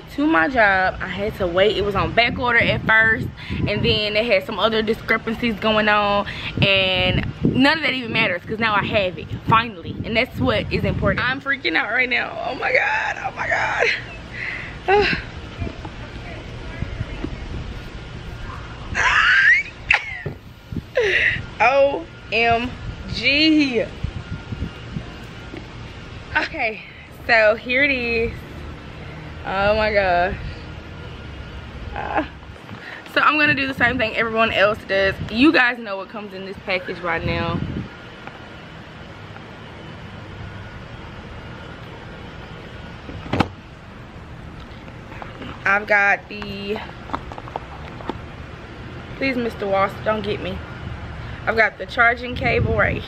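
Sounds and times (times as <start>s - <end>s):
outdoor background rumble: 0.0s - 53.0s
woman laughing: 13.5s - 15.4s, 19.0s - 21.6s
woman squealing: 18.9s - 20.4s.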